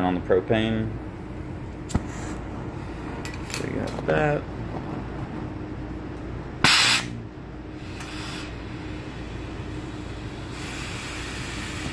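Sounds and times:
low hum: 0.8s - 11.9s
gas hissing: 6.5s - 11.9s
torch lighting pop: 6.6s - 7.2s.

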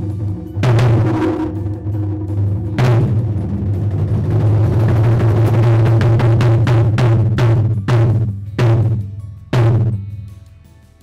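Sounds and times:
large drums beaten in rapid roll: 0.0s - 10.1s.

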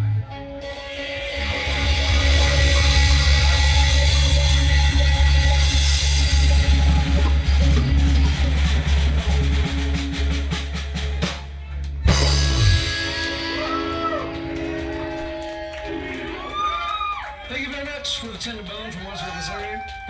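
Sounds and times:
electric guitars: 0.0s - 11.0s, 11.8s - 17.4s
drum kit with cymbals: 0.6s - 14.7s
low bass note: 1.2s - 10.0s.

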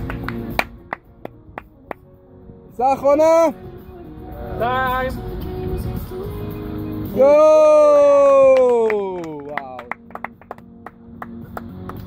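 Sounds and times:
background music held notes: 0.0s - 12.0s.

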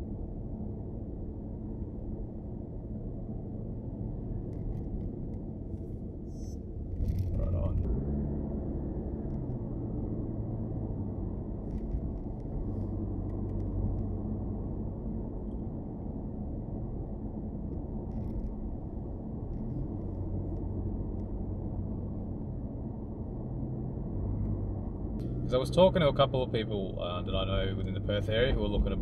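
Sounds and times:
engine hum and tyre noise: 0.0s - 29.0s.

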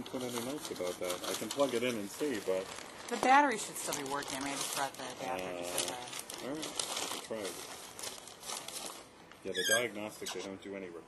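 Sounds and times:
paper rustling and crinkling: 0.0s - 9.1s.

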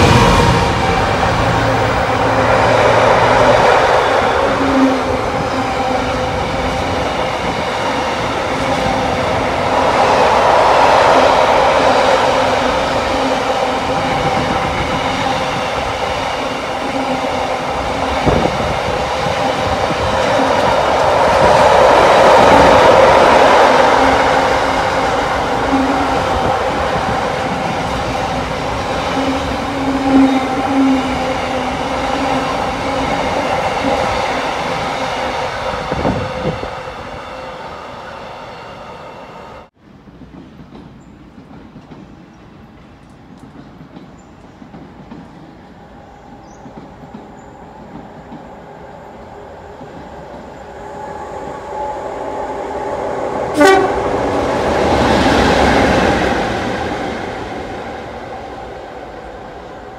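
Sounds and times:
freight train wheels rumbling on rails: 0.0s - 59.9s.

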